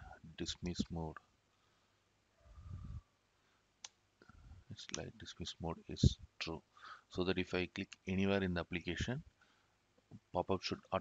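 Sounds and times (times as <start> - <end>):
man speaking: 0.0 - 1.2, 4.7 - 9.2, 10.4 - 11.0.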